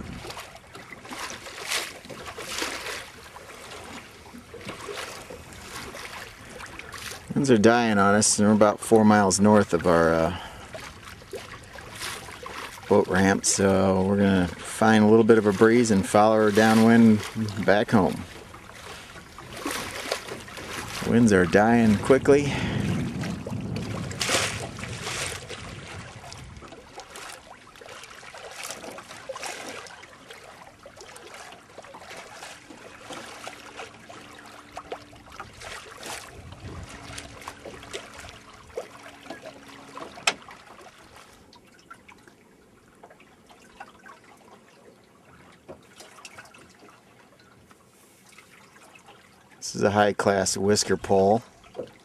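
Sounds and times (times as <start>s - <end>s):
water lapping along boat hull: 0.0s - 52.0s.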